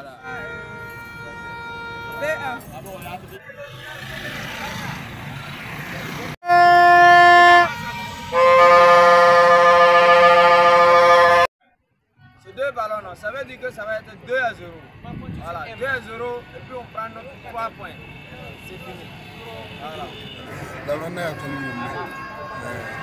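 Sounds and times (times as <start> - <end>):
street noise: 0.0 - 23.0
faint horn tones: 6.4 - 11.5, 19.4 - 23.0
vuvuzela blasts: 6.4 - 11.5.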